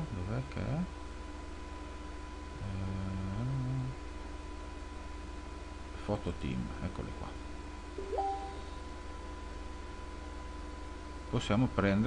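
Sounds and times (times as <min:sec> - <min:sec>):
steady electrical hum: 0:00.0 - 0:12.0
faint high whine: 0:08.0 - 0:09.0.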